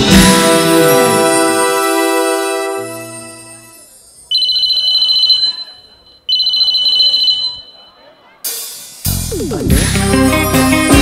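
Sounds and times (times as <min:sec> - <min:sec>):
band playing: 0:00.0 - 0:03.8, 0:09.0 - 0:11.0.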